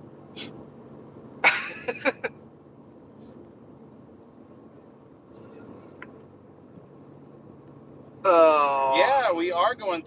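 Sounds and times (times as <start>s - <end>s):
car road noise: 0.0s - 10.0s
man laughing: 1.4s - 2.3s.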